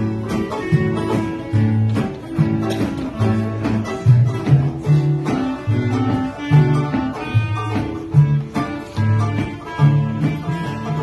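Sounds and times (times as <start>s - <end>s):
acoustic guitar strumming: 0.0s - 11.0s
clarinet: 0.0s - 11.0s
fiddle: 0.0s - 11.0s
plucked bass line: 0.0s - 11.0s.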